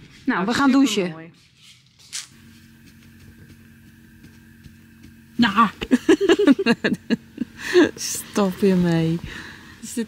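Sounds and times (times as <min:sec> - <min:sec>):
faint steady hum: 0:00.0 - 0:10.0
thin high whine: 0:00.0 - 0:10.0.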